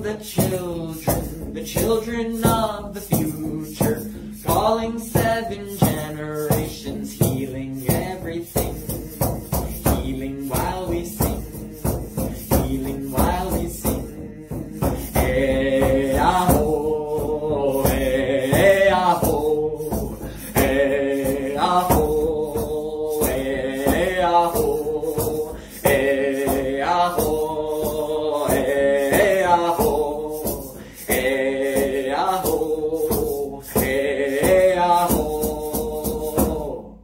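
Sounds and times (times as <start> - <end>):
frame drum struck with beater: 0.0 - 36.8
person singing slow chant: 0.0 - 37.0.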